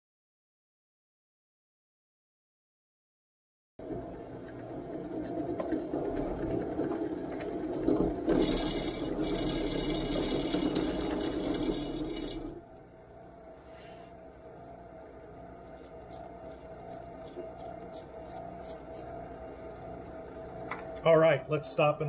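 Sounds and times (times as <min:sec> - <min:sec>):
quiet machine hum: 0:03.8 - 0:22.0
drill press milling metal: 0:08.3 - 0:12.6.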